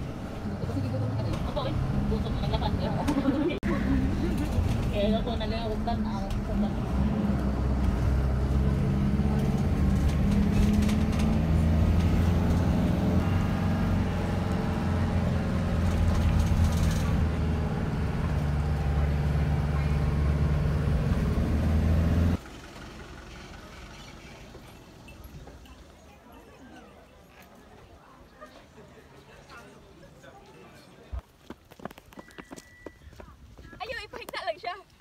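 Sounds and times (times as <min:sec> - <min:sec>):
minibus engine drone: 0:00.0 - 0:25.5
open-air ambience: 0:00.0 - 0:35.0.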